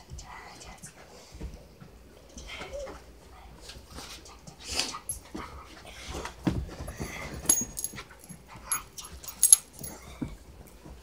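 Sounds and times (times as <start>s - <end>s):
sharp high clinks: 7.5s - 10.0s.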